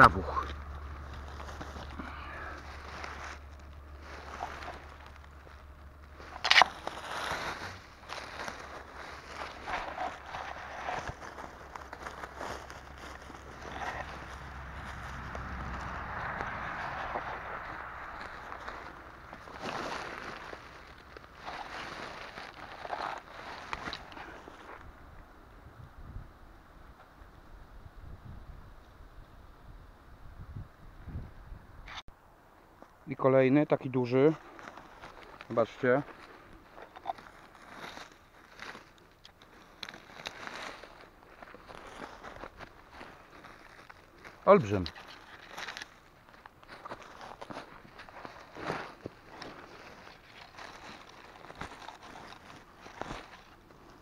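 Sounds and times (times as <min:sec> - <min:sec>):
dry leaves rustling and crunching: 0:00.0 - 0:25.1, 0:33.8 - 0:54.0.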